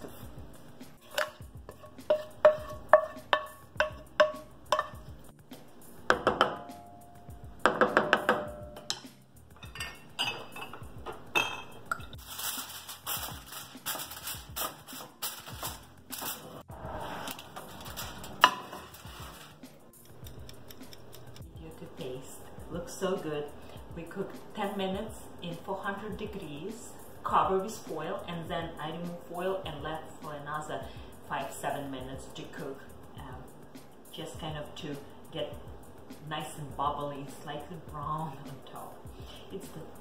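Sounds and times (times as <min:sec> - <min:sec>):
metal spoon clinking on pan: 0:01.1 - 0:05.0, 0:07.9 - 0:10.8
aluminium foil crinkling: 0:12.2 - 0:16.5.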